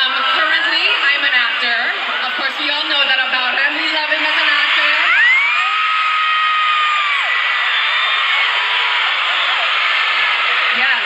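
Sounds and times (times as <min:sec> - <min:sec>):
crowd screaming and cheering: 0:00.0 - 0:11.0.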